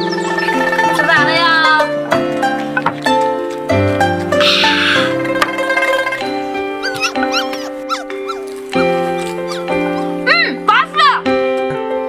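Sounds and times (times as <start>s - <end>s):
background music sustained notes: 0.0s - 12.0s
dog whining: 6.8s - 10.2s.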